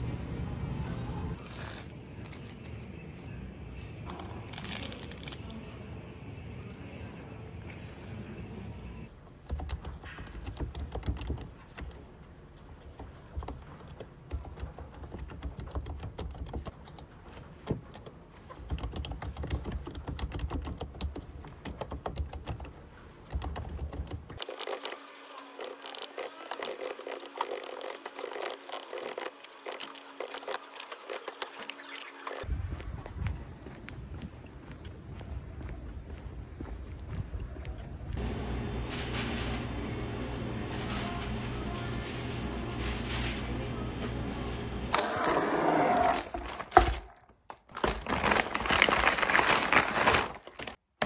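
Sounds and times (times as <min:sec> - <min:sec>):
computer keyboard typing: 0:18.6 - 0:24.8.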